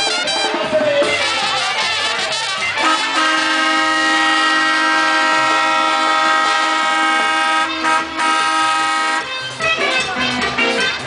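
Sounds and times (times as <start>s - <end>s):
truck air horn: 0.0s - 9.7s.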